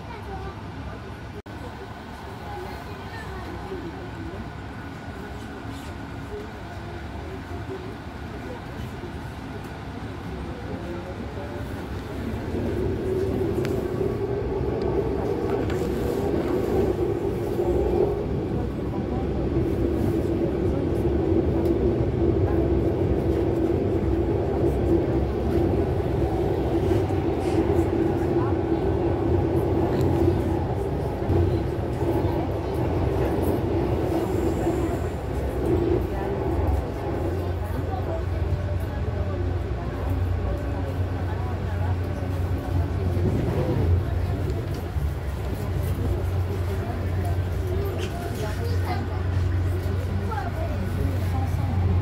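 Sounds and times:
train rumbling from inside carriage: 0.0 - 52.0.

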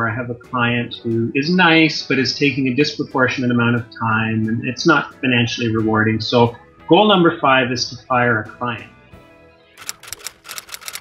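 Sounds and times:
soft background music: 0.0 - 11.0
typewriter keys clacking: 9.8 - 11.0.

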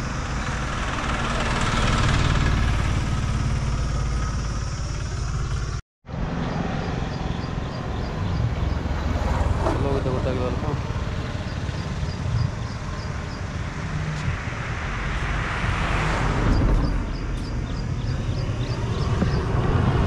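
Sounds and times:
roadside traffic noise: 0.0 - 20.0
vehicle passing: 0.0 - 20.0
wind rumbling on microphone: 11.0 - 20.0.

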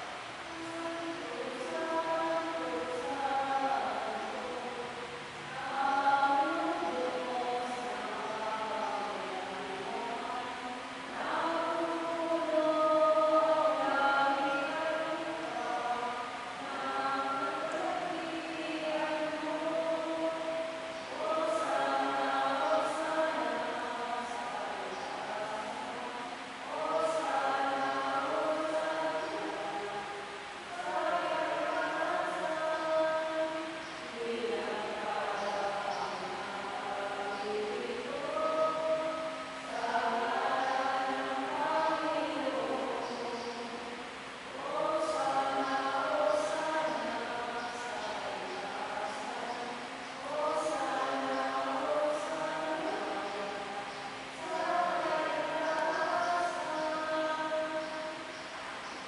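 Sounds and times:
choir singing a hymn: 0.0 - 58.4.

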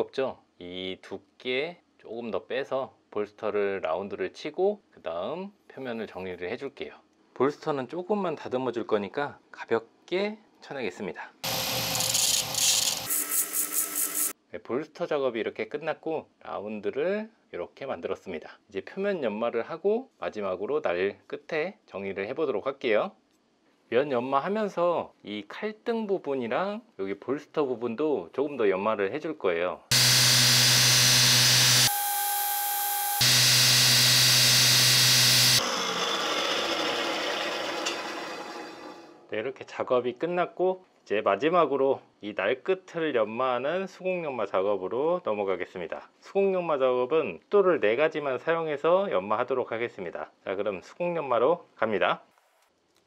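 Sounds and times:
belt grinder grinding steel: 11.4 - 14.3, 29.9 - 39.1.

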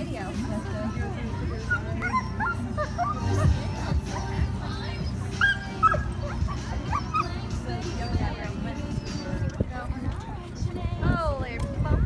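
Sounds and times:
background music: 0.0 - 12.0
dog yipping and whining: 1.4 - 9.6.

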